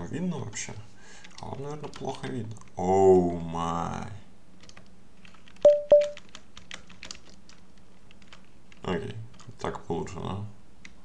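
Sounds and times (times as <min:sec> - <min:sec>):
keyboard typing clicks: 0:04.6 - 0:07.6
short ringing beeps: 0:05.7 - 0:06.2.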